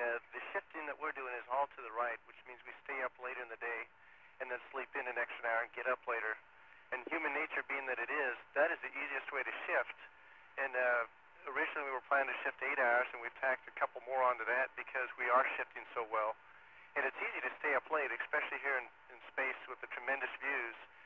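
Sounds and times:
person speaking over radio: 0.0s - 16.3s, 17.0s - 20.8s.

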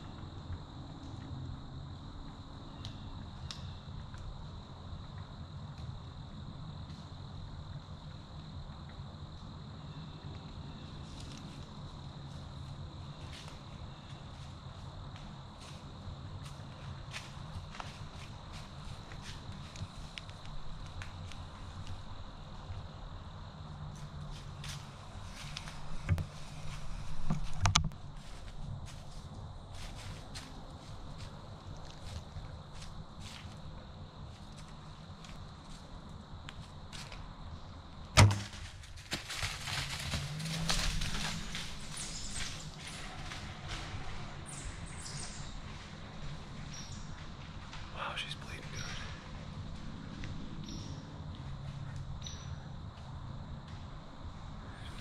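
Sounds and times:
high insect trill: 0.0s - 55.0s
footsteps in dry leaves: 28.1s - 33.6s, 38.5s - 47.2s
leaves rustling: 38.2s - 50.2s.

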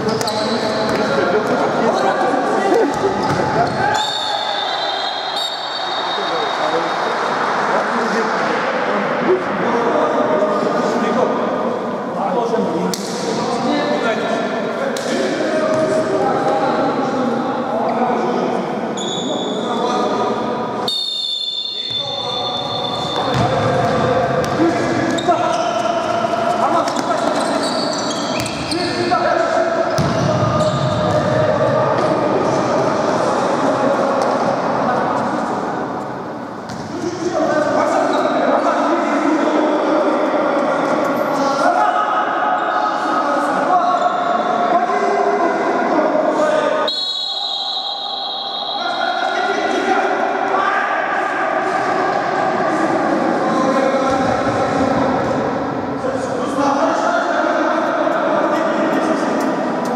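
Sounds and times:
players shouting in echoing hall: 0.0s - 59.9s
ball kicked and bouncing: 23.2s - 23.5s, 36.7s - 36.9s.

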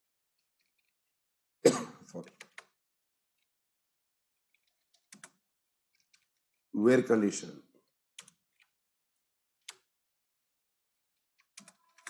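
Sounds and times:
typing on keyboard: 2.2s - 2.8s, 4.5s - 5.4s, 8.2s - 8.7s, 9.6s - 9.9s, 11.4s - 12.0s.

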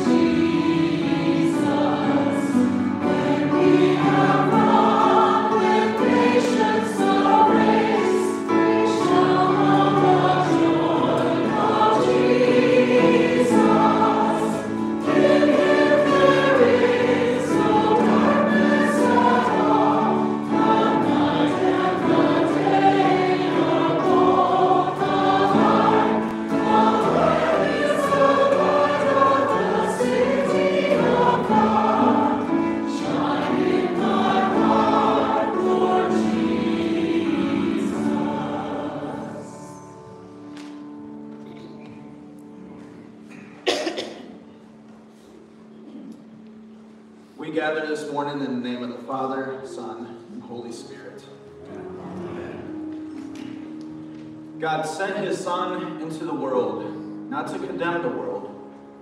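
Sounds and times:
group singing a hymn: 0.0s - 40.8s, 51.6s - 54.0s
instrumental accompaniment: 0.0s - 59.0s.

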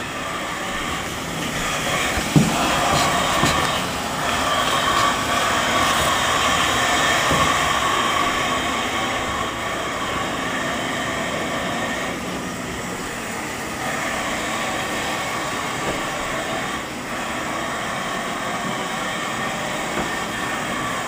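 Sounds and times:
steady mechanical drone: 0.0s - 21.0s.

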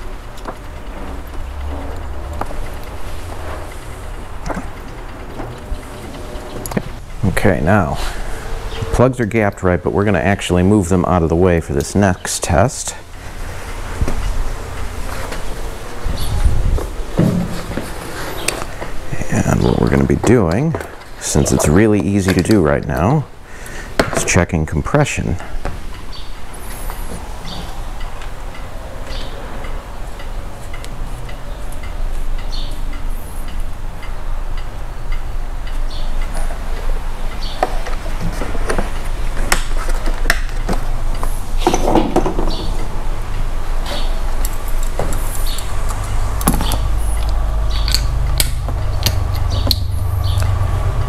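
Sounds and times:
steady low rumble: 0.0s - 23.6s, 42.6s - 51.0s.

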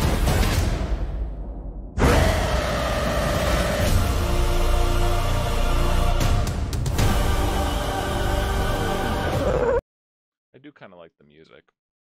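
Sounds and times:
dramatic trailer music: 0.0s - 9.5s.

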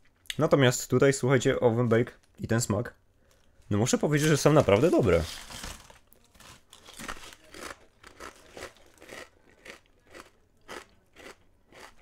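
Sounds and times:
person chewing crisp chips: 4.2s - 12.0s.

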